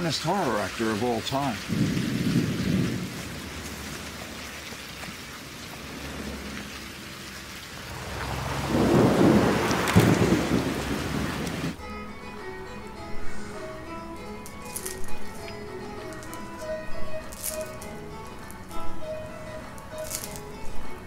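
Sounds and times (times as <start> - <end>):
steady rain falling: 0.0 - 11.8, 14.5 - 21.0
low roll of thunder: 1.7 - 3.9, 8.0 - 11.8
faint music: 11.8 - 21.0.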